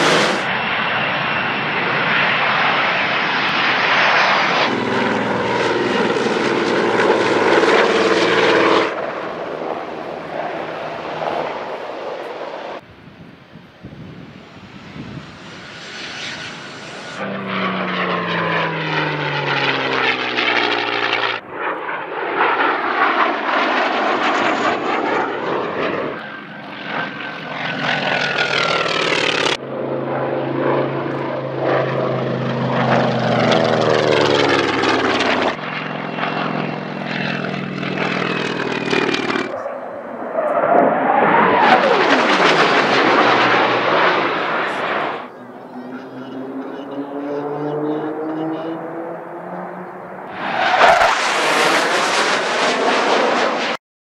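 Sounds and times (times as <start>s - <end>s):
propeller plane engines passing: 0.0s - 53.8s.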